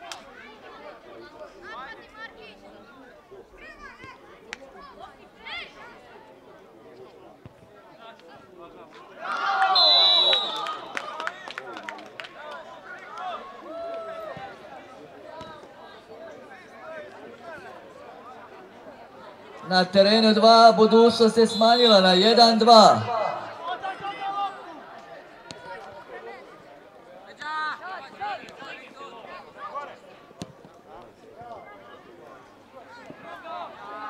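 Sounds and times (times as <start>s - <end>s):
referee's whistle blast: 9.7s - 10.8s, 20.8s - 22.3s.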